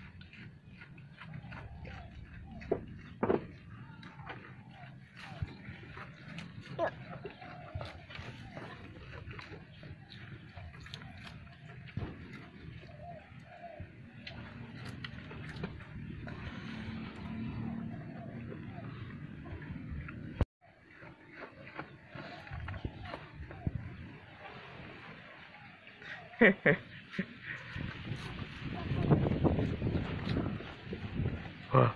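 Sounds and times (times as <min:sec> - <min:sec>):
goat chewing grass: 0:00.0 - 0:24.4
dull knocks on wooden pen: 0:02.6 - 0:03.6
rustling of leaves: 0:20.7 - 0:31.9.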